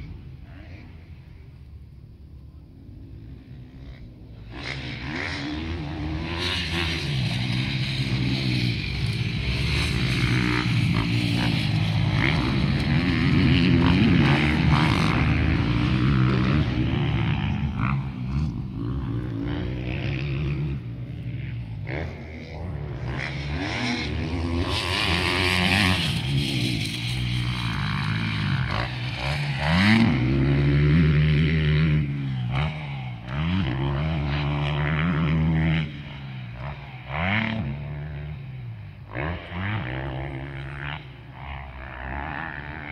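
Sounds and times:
motocross motorcycles revving: 0.0 - 42.9.

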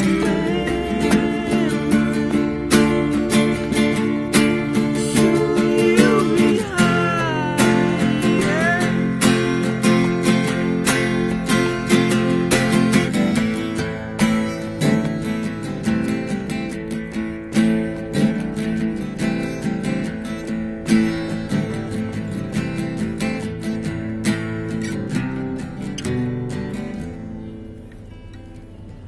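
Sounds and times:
acoustic guitars strummed: 0.0 - 29.0.

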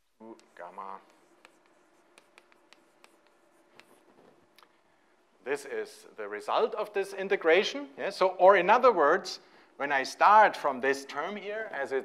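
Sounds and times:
faint steady hum: 0.0 - 12.0
pen scratching on paper: 0.5 - 4.3.

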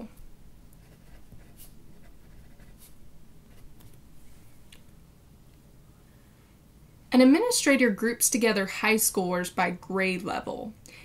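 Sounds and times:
pen writing on paper: 0.8 - 2.9.

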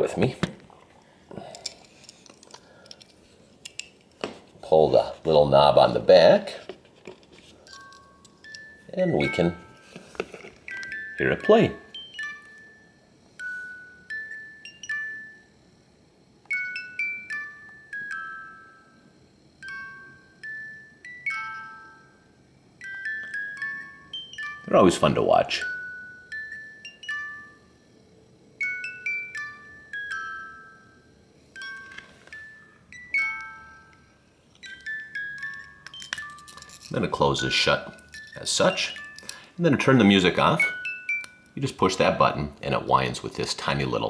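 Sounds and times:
music box playing a tune: 7.7 - 15.6, 16.5 - 27.9, 28.6 - 42.9
small metallic clicks of locket: 34.5 - 37.0, 39.0 - 39.5.

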